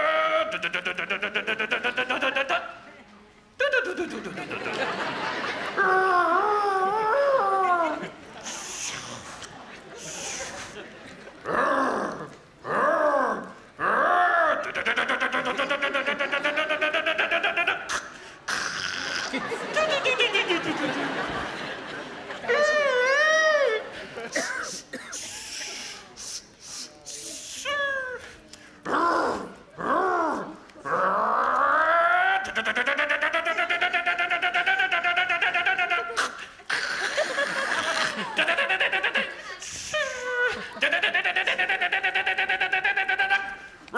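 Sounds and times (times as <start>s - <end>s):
person's wavering vocal call: 0.0s - 2.8s, 5.7s - 9.3s, 11.4s - 20.8s, 22.5s - 24.0s, 27.2s - 43.8s.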